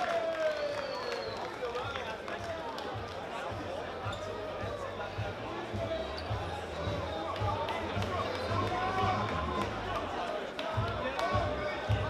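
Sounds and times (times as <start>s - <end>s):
many voices talking: 0.0s - 12.0s.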